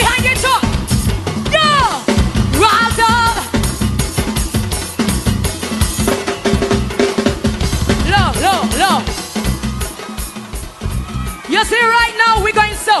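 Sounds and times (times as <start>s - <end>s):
live soca music: 0.0s - 13.0s.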